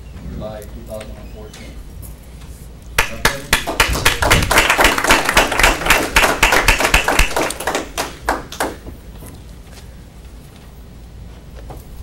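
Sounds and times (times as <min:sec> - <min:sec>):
small group clapping: 0:03.0 - 0:08.9.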